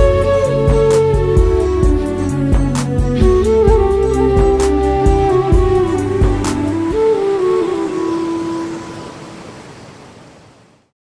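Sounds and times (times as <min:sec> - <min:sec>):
background music: 0:00.0 - 0:09.0.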